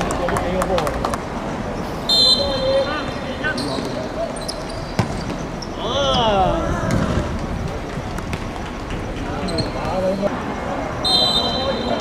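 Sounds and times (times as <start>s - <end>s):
referee's whistle: 2.0s - 3.7s, 11.0s - 12.0s
ball being kicked: 5.0s - 5.4s
players shouting: 5.7s - 7.4s.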